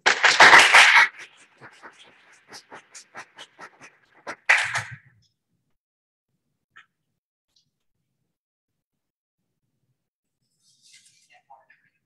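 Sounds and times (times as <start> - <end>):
audience applause: 0.1 - 1.2.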